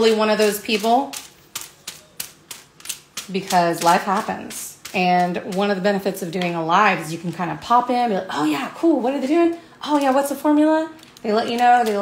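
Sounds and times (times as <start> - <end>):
brush ticking on foil: 0.0 - 8.0, 9.2 - 12.0.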